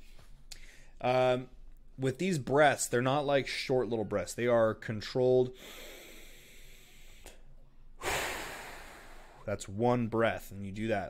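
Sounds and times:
slow controlled breathing: 0.0 - 1.0, 5.5 - 9.5.

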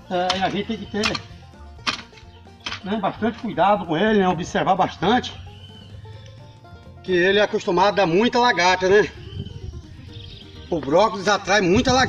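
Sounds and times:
mattock striking stony soil: 0.1 - 3.6.

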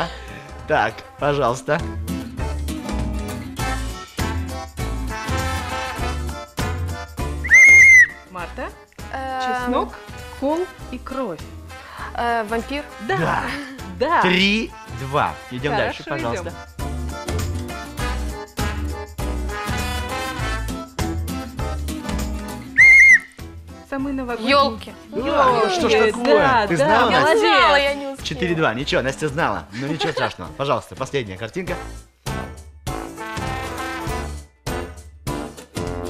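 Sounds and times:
upbeat background music: 0.0 - 36.0
toy whistle blast: 7.4 - 8.2, 22.8 - 23.3.

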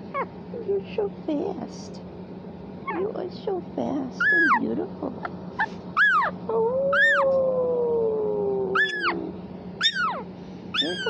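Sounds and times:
kitten mewing: 2.9 - 3.2, 4.2 - 4.7, 5.6 - 11.0.

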